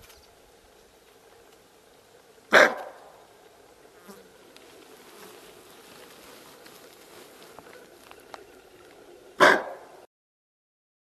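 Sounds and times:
faint background hiss: 0.0 - 10.1
animal bark-like call: 2.5 - 3.1, 9.4 - 10.0.

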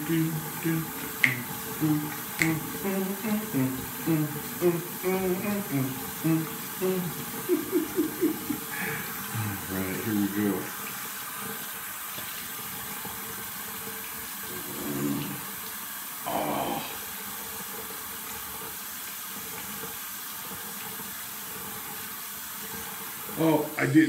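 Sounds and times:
sink tap running: 0.0 - 23.8.

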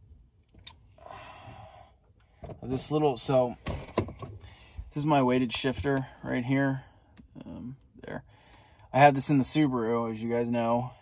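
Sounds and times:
breathy exhale: 1.0 - 2.4.

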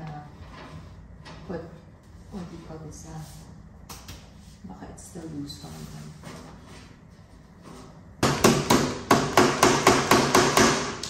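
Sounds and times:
mallet knocking furniture parts: 8.2 - 11.0.

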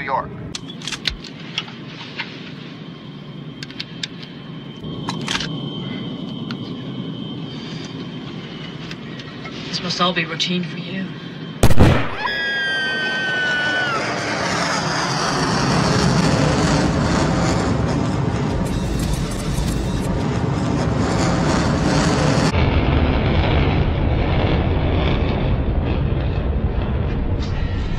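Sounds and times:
jet aircraft roar: 0.0 - 27.9.

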